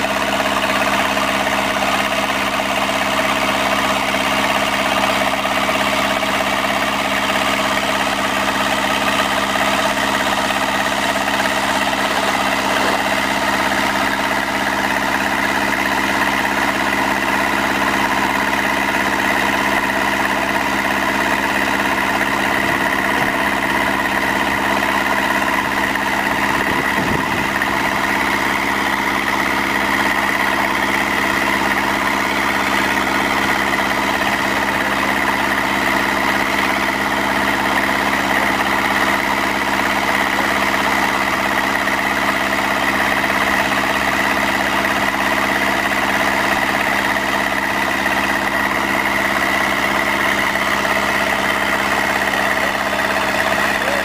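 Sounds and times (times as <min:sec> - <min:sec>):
pump engine running: 0:00.0 - 0:54.0.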